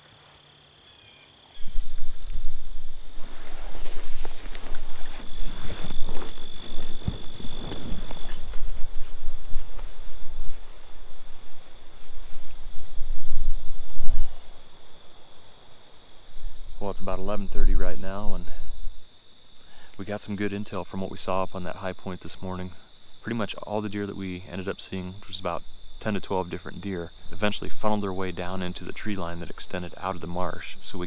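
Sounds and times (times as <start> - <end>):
branches and clothing rustling: 0.0 - 31.0
insects trilling: 0.0 - 31.0
wind rumbling on microphone: 1.6 - 19.1.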